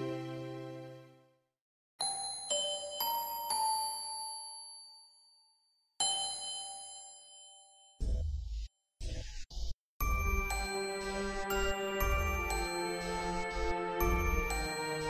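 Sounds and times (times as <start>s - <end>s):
bell-like chime notes: 2.0s - 8.0s, 10.0s - 15.0s.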